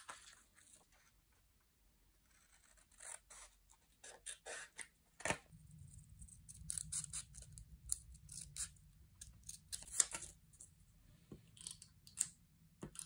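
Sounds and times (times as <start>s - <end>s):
scissors snipping paper: 6.4s - 10.4s.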